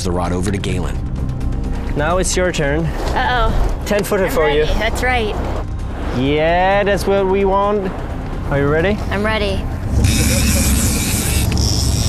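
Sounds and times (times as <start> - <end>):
fishing reel drag buzzing: 10.0 - 12.0.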